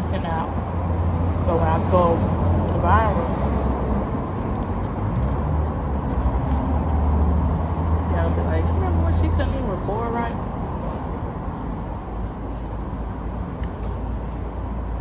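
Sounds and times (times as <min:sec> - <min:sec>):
traffic noise: 0:00.0 - 0:15.0
vehicle engine rumbling: 0:00.0 - 0:15.0.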